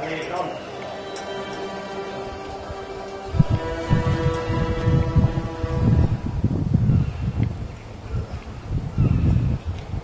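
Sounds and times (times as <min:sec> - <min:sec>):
background music held notes: 0:00.0 - 0:06.9
wind buffeting microphone: 0:02.2 - 0:10.0.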